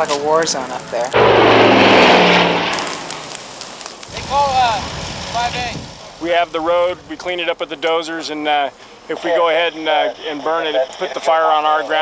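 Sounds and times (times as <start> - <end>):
airplane engines passing overhead: 0.0 - 7.9.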